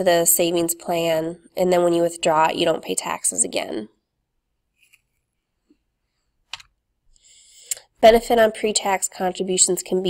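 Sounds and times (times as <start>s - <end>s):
inhaled breath: 7.1s - 7.8s.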